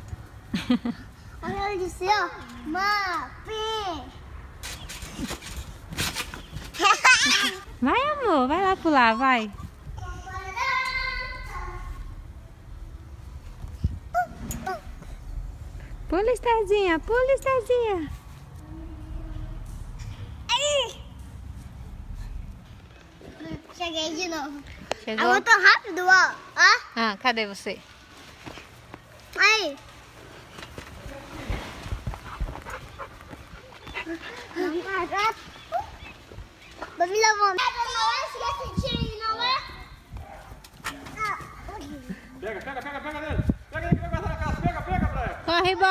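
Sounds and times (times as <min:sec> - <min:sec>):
low rumbling: 0:09.5 - 0:24.5.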